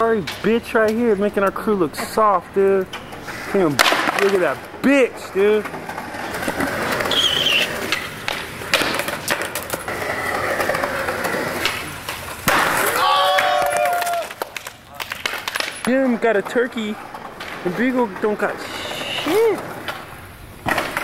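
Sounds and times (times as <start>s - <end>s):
skateboard wheels rolling on concrete: 0.0s - 21.0s
skateboard landing clack: 2.8s - 4.8s, 5.6s - 18.3s, 19.2s - 21.0s
voices shouting: 12.8s - 14.4s.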